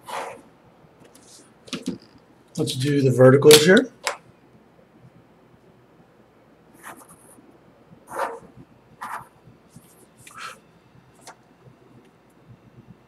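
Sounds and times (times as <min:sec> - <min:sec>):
pencil scratching along paper: 0:00.0 - 0:00.4, 0:06.8 - 0:07.4, 0:08.1 - 0:10.6.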